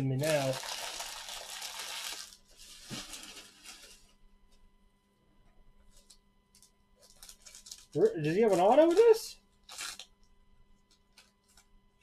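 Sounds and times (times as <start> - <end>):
card pack wrappers rustling: 0.2 - 4.1, 7.0 - 10.2.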